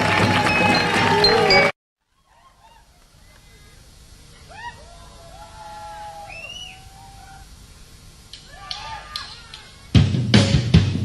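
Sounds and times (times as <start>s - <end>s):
short whistled bird calls: 6.2s - 7.5s.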